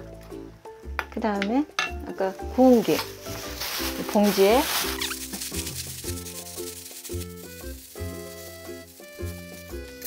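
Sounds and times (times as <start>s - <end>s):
light background music: 0.0s - 10.0s
crackling of laver in plastic bag: 2.5s - 10.0s.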